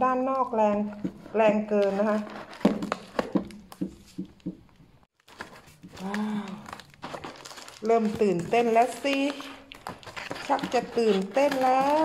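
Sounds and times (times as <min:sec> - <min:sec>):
scissors cutting cardboard: 0:01.0 - 0:03.5, 0:08.1 - 0:12.0
crinkle of plastic tape: 0:05.2 - 0:12.0
person humming: 0:06.0 - 0:06.7.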